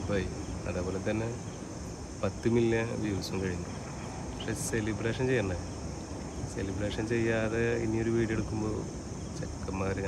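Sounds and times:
man talking: 0.0s - 1.5s, 2.2s - 3.7s, 4.4s - 5.7s, 6.5s - 10.0s
crickets chirping: 0.0s - 10.0s.

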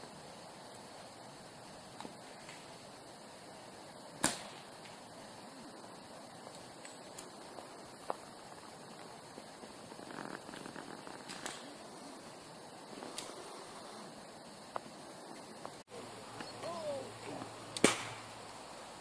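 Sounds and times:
faint outdoor background: 0.0s - 19.0s
air rifle shot crack: 4.2s - 4.7s, 17.8s - 18.3s.

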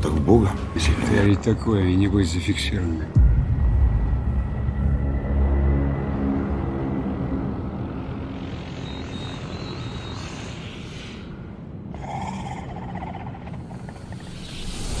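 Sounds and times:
low rumbling drone: 0.0s - 15.0s.

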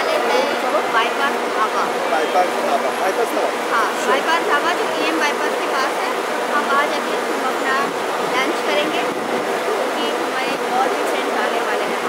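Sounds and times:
woman talking: 0.0s - 2.1s, 3.7s - 12.0s
city traffic and buses: 0.0s - 12.0s.

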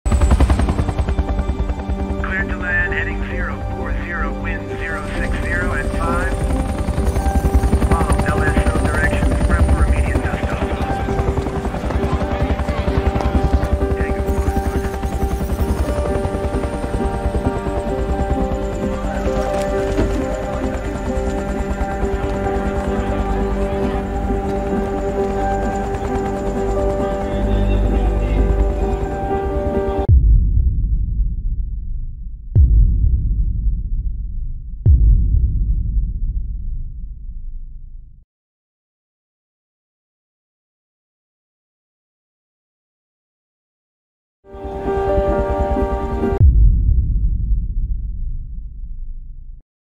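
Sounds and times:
helicopter rotor chopping: 0.1s - 30.0s
sustained film music: 0.1s - 36.8s, 44.5s - 48.9s
voices: 2.2s - 6.4s, 7.9s - 14.4s, 18.8s - 29.2s
low rumbling drone: 3.1s - 38.2s, 46.0s - 49.6s
deep booming hits: 30.1s - 38.1s, 46.4s - 49.6s.

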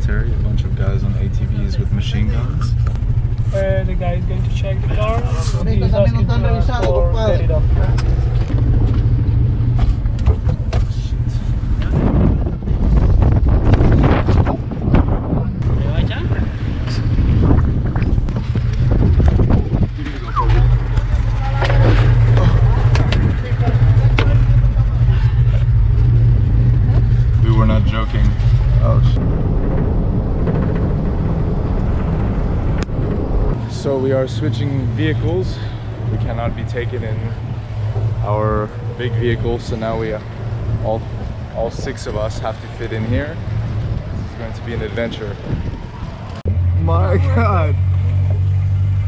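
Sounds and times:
car engine droning: 0.0s - 49.0s
background voices: 19.6s - 29.3s.

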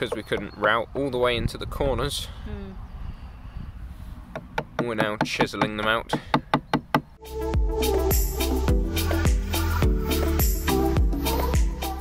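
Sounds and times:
hammer striking chisel: 4.3s - 7.1s
background music with beat: 7.2s - 12.0s.

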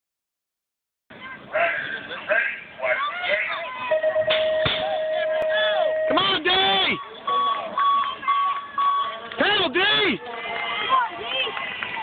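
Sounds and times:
people calling out: 1.2s - 12.0s.

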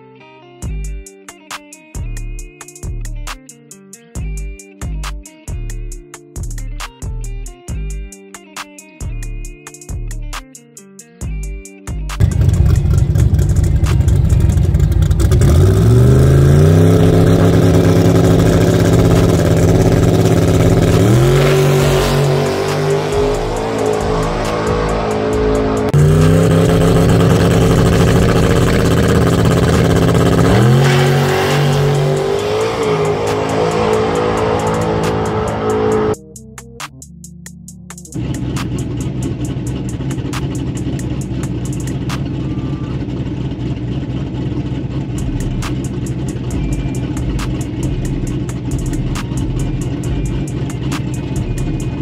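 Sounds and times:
race car engine at full throttle: 12.2s - 36.2s, 38.1s - 52.0s.

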